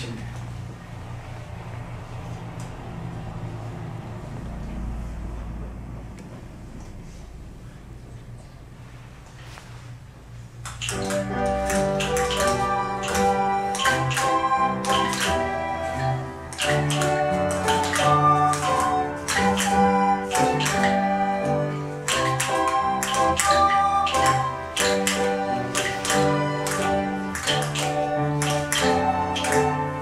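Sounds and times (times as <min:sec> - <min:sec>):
live instrumental ensemble music: 0:10.8 - 0:30.0.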